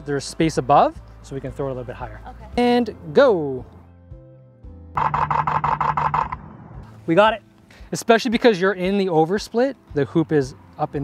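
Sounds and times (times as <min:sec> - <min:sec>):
camera shutter burst: 0:05.0 - 0:06.4.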